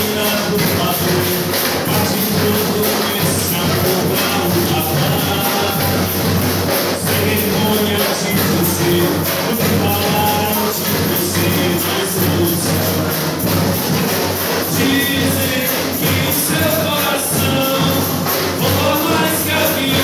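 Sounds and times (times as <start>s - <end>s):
bass drum: 0.0s - 20.0s
carnival percussion music: 0.0s - 20.0s.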